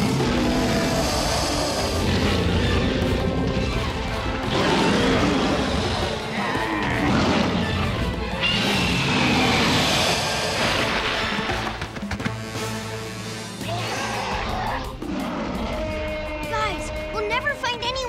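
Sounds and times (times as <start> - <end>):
dinosaur roar: 0.0 - 11.6, 13.6 - 17.2
dramatic orchestral music: 0.0 - 18.0.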